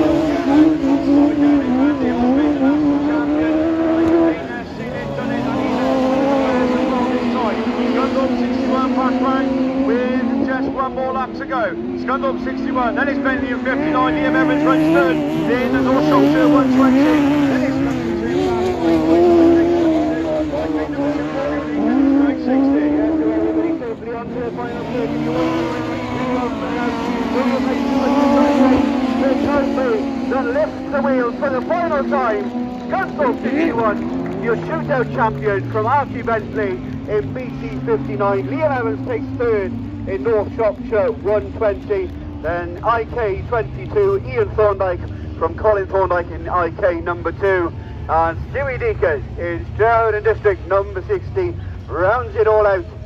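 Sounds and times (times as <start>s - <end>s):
race car engines at high revs: 0.0s - 53.0s.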